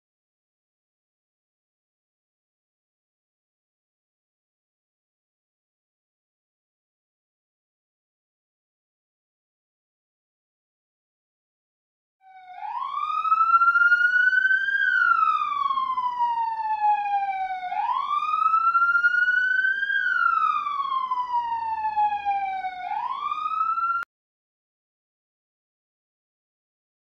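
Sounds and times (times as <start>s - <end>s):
ambulance siren wailing: 12.2s - 24.1s.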